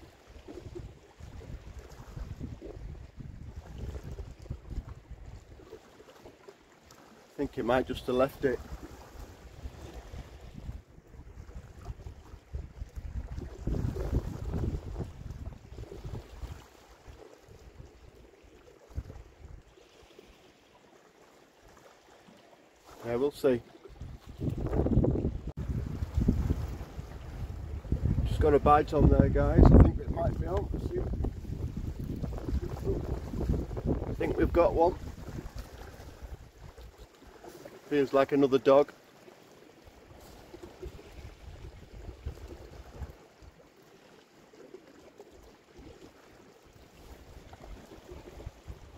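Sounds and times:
wind buffeting microphone: 0.0 - 5.6, 8.6 - 16.6, 23.9 - 37.0, 40.6 - 43.2, 47.0 - 48.9
sea washing against rocks: 7.4 - 18.3, 22.8 - 39.0, 45.8 - 48.9.

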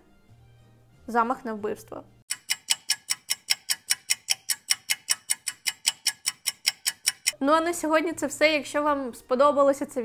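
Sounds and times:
rapid clock ticks: 2.3 - 7.4.

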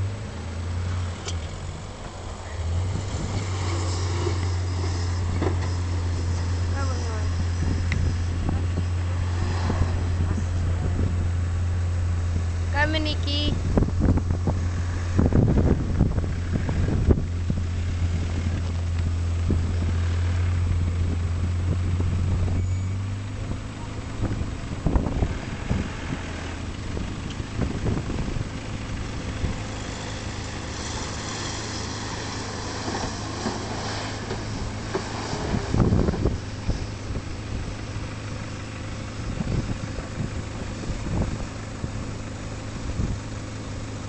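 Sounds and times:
vehicle engine driving in sand: 0.0 - 44.0
wind on microphone: 2.7 - 11.6, 13.5 - 20.0, 24.1 - 38.0, 39.1 - 43.4.

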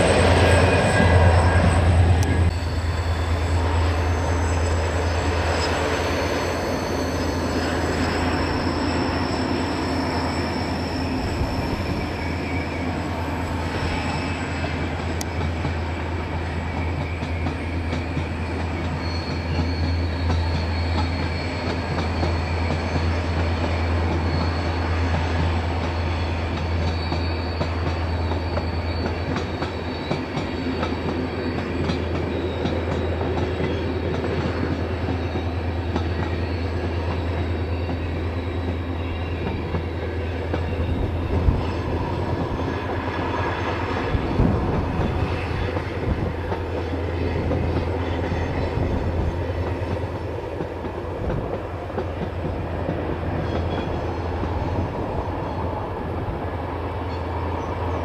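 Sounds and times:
diesel locomotive engine drone: 0.0 - 58.0
wheels squealing: 0.0 - 58.0.

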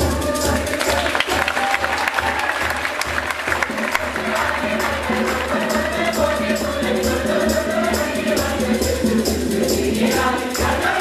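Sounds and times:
choir singing: 0.0 - 11.0
hand drums beat: 0.0 - 11.0
people clapping: 0.6 - 5.9.

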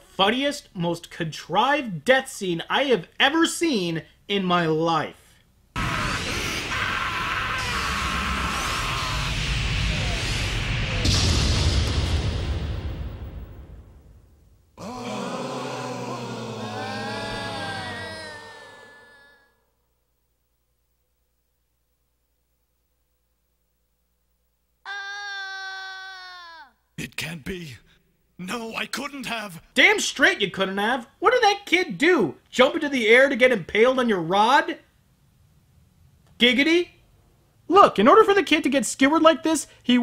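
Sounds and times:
child crying out: 5.8 - 9.4, 14.8 - 19.6, 24.9 - 26.8
noisy sound effects: 5.8 - 14.5.

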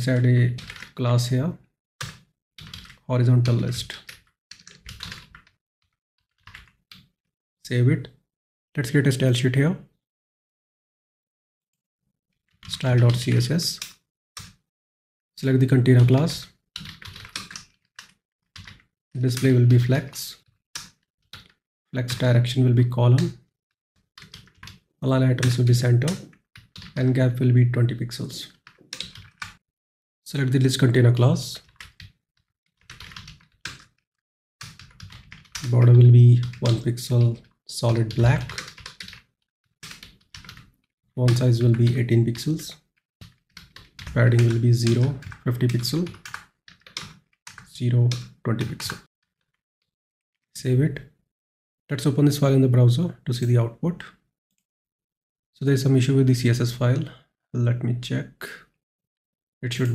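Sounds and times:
computer keyboard typing: 0.1 - 1.0, 2.0 - 5.6, 6.3 - 7.1, 12.6 - 14.6, 15.9 - 22.3, 24.2 - 27.0, 28.5 - 29.6, 31.6 - 32.2, 32.8 - 34.0, 34.6 - 49.6.

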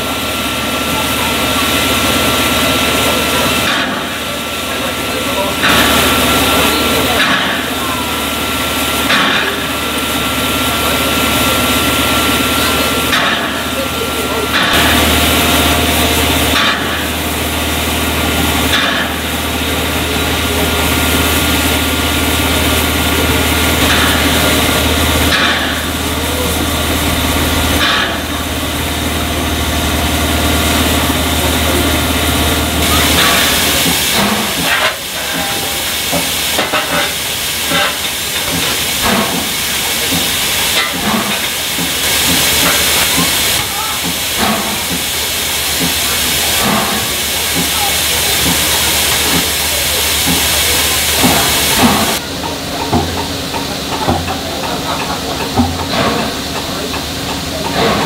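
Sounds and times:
steam hissing: 0.0 - 58.0.

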